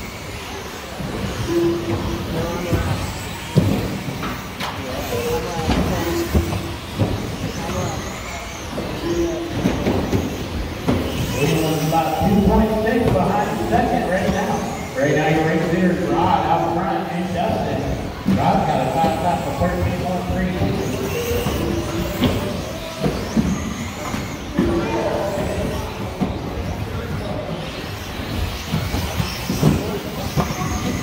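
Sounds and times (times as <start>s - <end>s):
electric motors whining: 0.0s - 31.0s.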